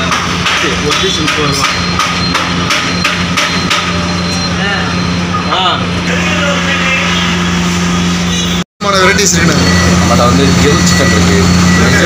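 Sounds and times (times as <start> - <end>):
sharp knocks: 0.0 - 4.0
steady machine hum: 0.0 - 12.0.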